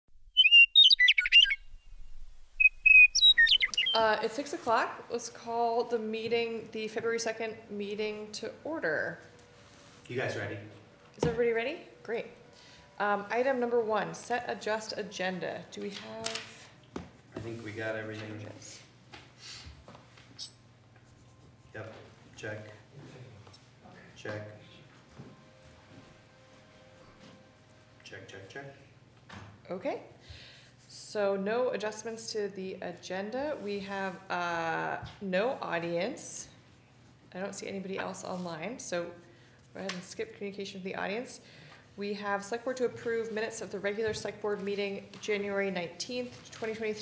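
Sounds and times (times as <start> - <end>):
songbird chirping and trilling: 0.3 - 4.2, 20.4 - 20.6
steady low hum: 1.6 - 15.8, 16.6 - 30.8.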